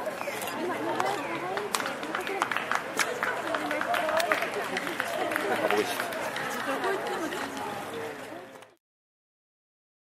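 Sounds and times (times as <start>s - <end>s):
chatter of voices: 0.0s - 8.8s
street noise: 0.0s - 8.8s.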